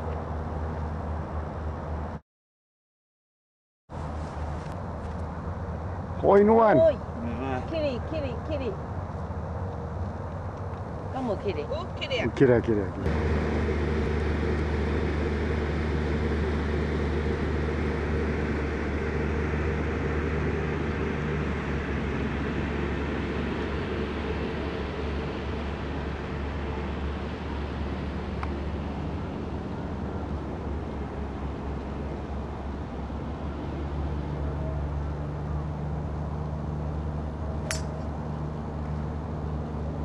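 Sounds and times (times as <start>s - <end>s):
low hum and rumble: 4.0s - 40.0s.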